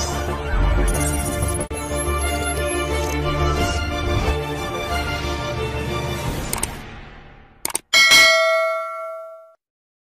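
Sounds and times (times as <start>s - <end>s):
notification bell ding: 8.0s - 9.6s.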